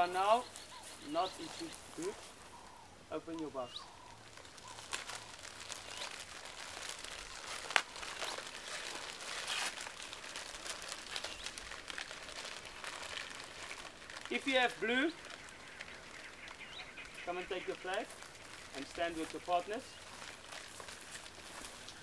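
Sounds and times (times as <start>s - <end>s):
wrapping crinkling and rustling: 0.0s - 22.0s.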